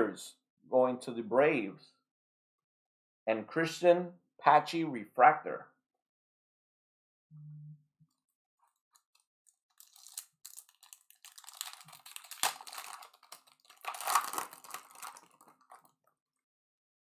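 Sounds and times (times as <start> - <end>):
plastic wrapper crinkling: 9.0 - 16.1.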